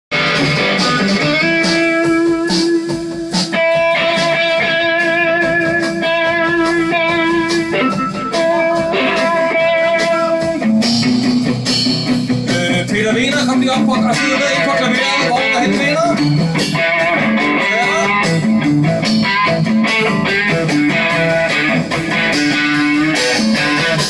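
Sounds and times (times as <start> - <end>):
bass guitar: 0.1 - 24.0
drum kit: 0.1 - 24.0
electric guitar sustained notes: 0.2 - 12.8.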